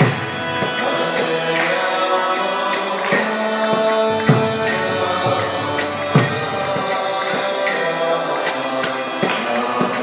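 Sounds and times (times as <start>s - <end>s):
jingling percussion beat: 0.0s - 10.0s
mantra chanting with music: 0.0s - 10.0s.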